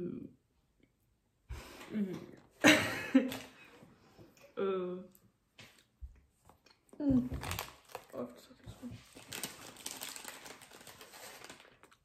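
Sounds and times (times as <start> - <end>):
snack wrapper crinkling: 7.4 - 8.2, 9.1 - 12.0.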